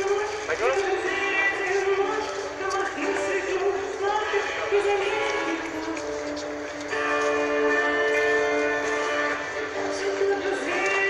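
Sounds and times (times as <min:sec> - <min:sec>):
live street music: 0:00.0 - 0:11.0.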